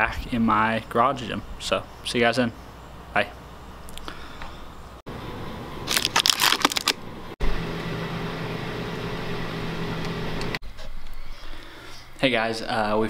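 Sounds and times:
car cabin engine and road drone: 0:05.0 - 0:10.6
crinkling and clatter: 0:05.9 - 0:07.0.

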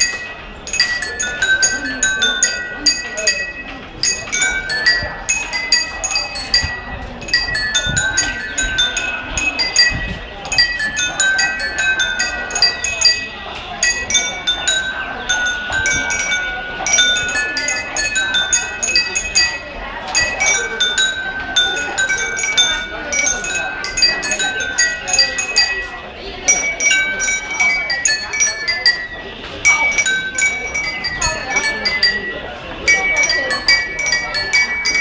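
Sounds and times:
porcelain bowls struck with chopsticks: 0:00.0 - 0:35.0.

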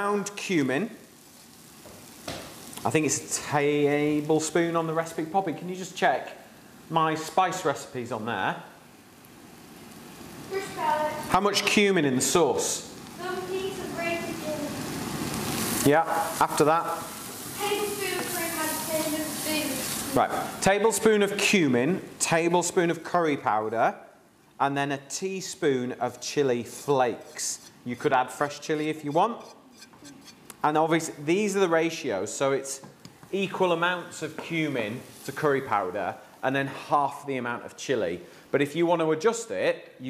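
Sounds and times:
onion frying in a pan: 0:00.0 - 0:40.0
spatula stirring: 0:26.2 - 0:30.6.

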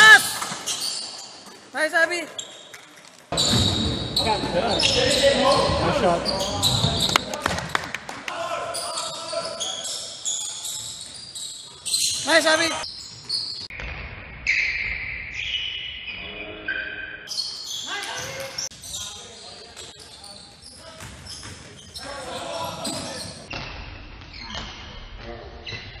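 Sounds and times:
shoes squeaking on gym floor: 0:00.0 - 0:07.3, 0:08.8 - 0:13.7, 0:17.3 - 0:23.5
players' voices echoing: 0:01.5 - 0:02.4, 0:03.3 - 0:11.0, 0:11.7 - 0:12.9, 0:17.7 - 0:23.5.

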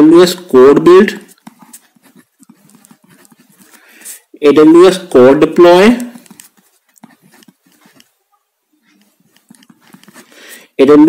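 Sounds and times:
ballpoint pen writing on paper: 0:01.2 - 0:04.2, 0:05.7 - 0:08.2, 0:08.9 - 0:10.8.

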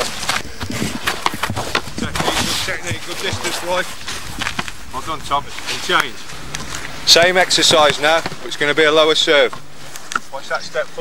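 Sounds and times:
voices calling out: 0:00.0 - 0:11.0
person speaking: 0:04.9 - 0:09.6
football knocks: 0:07.4 - 0:08.6.

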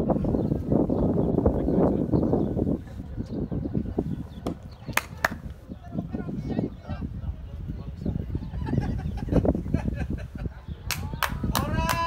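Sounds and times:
wind rumble on microphone: 0:00.0 - 0:12.0.

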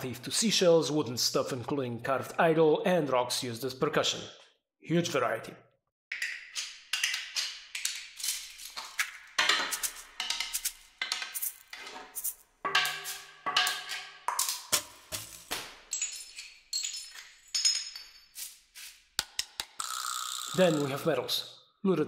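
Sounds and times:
percussion knocks and clicks: 0:19.2 - 0:20.9.

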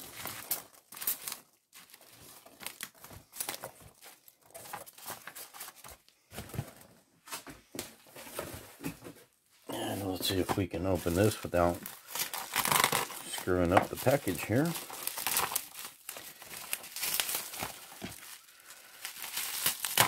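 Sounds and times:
packing peanuts rustling: 0:00.0 - 0:06.7, 0:09.7 - 0:20.0.

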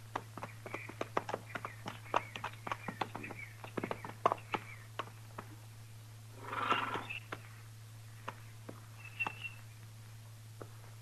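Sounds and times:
hoof clicks: 0:00.0 - 0:05.6, 0:06.6 - 0:07.5, 0:08.2 - 0:09.6
low steady recording hum: 0:00.0 - 0:11.0
horse snort: 0:06.3 - 0:07.2.

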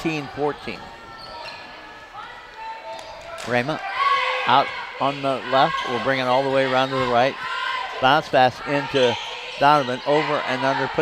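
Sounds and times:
sneaker squeaks: 0:00.8 - 0:02.0, 0:08.9 - 0:10.1.

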